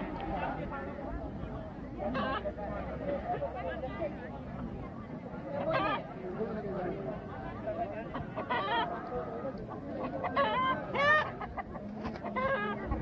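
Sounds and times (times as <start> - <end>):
people talking: 0.0 - 13.0.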